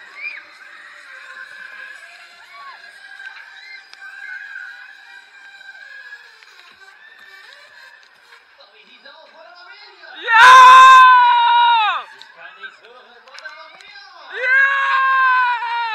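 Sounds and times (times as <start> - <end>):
riders screaming and shouting: 0.0 - 8.4, 10.2 - 12.3, 14.3 - 15.9.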